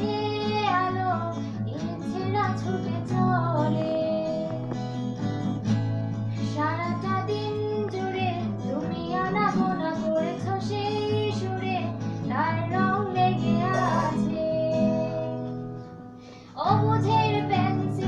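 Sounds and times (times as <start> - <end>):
woman singing: 0.0 - 4.8, 6.4 - 15.6, 16.5 - 18.0
strummed acoustic guitar: 0.0 - 18.0.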